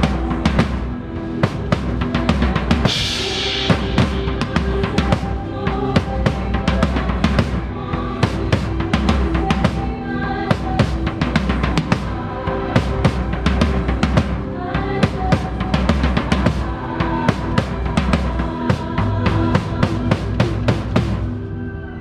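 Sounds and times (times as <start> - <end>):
drum kit groove: 0.0 - 21.4.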